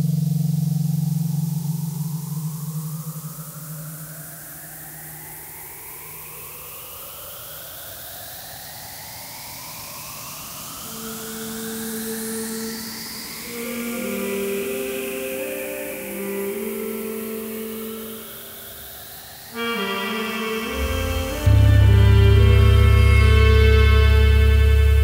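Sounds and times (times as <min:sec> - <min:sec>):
steady hiss: 0:00.0 - 0:25.0
rising synthesizer pitch sweeps: 0:19.5 - 0:25.0
low organ-like notes: 0:20.4 - 0:25.0.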